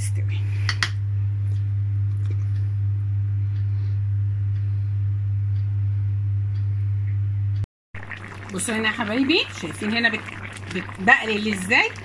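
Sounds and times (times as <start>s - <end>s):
steady low hum: 0.0s - 12.0s
faint ticks of food heating: 5.5s - 5.9s, 8.0s - 12.0s.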